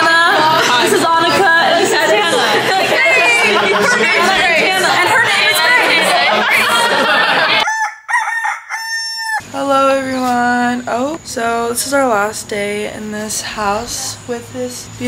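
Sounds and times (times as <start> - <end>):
girls laughing and shrieking: 0.0 - 7.7.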